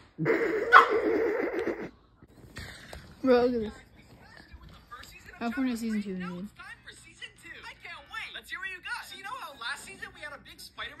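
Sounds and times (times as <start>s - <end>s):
person's high quavering laugh: 0.2s - 2.0s.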